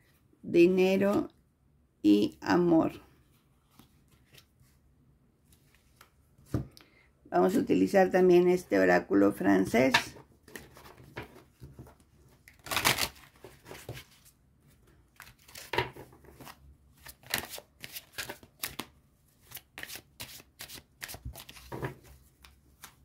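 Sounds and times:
cards being shuffled: 0:15.2 - 0:23.0.

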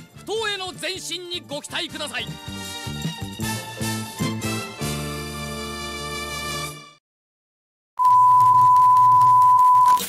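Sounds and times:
test tone beep: 0:08.0 - 0:10.0.

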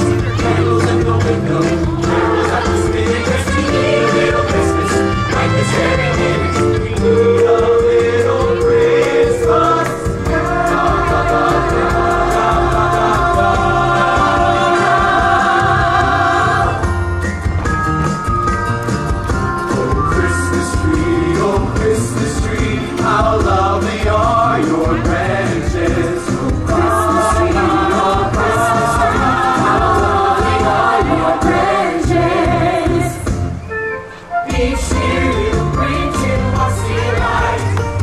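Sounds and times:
choir singing into microphones: 0:00.0 - 0:17.0, 0:19.7 - 0:33.6, 0:34.3 - 0:38.0
amplified backing music with bass: 0:00.0 - 0:38.0.

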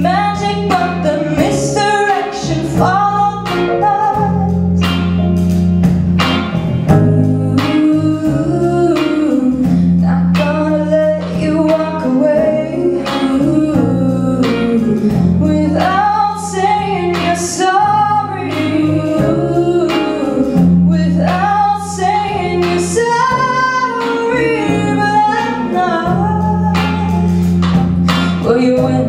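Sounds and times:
woman singing pop ballad: 0:00.0 - 0:05.1, 0:06.9 - 0:29.0
bass notes: 0:00.0 - 0:29.0
live band drums and guitar: 0:00.0 - 0:29.0.

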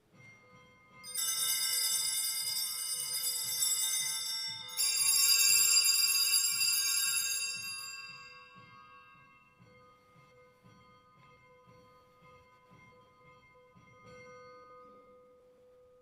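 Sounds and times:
bells ringing brightly: 0:00.0 - 0:15.6.

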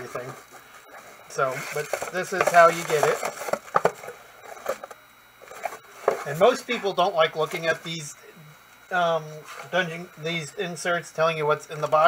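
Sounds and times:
paper rustling and scraping: 0:00.0 - 0:06.8, 0:09.4 - 0:09.9.

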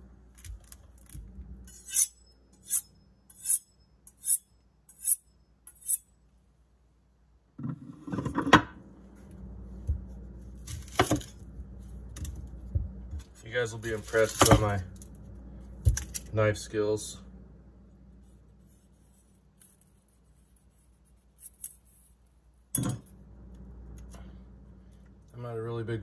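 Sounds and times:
knife scraping on honing rod: 0:01.7 - 0:06.1.

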